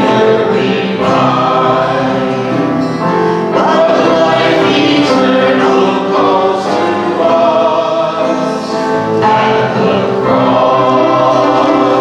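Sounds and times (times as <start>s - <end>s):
acoustic guitar: 0.0s - 12.0s
congregation and band singing hymn: 0.0s - 12.0s.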